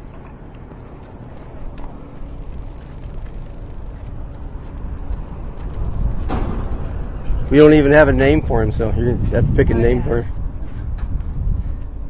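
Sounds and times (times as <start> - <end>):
hooves clip-clopping on asphalt: 0.0 - 7.3
low rumble: 1.1 - 12.0.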